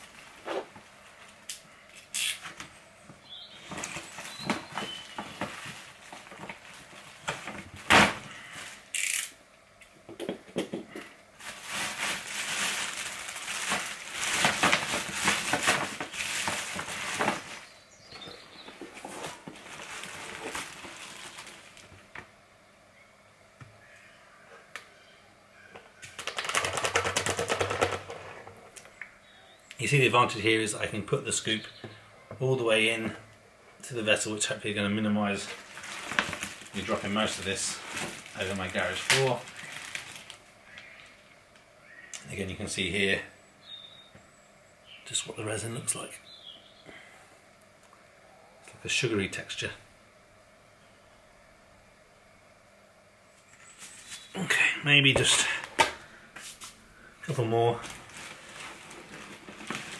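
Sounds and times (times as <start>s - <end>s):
plastic bag crinkling: 3.3s - 9.2s, 11.4s - 22.1s, 26.1s - 28.3s, 35.3s - 41.1s, 57.2s - 59.9s.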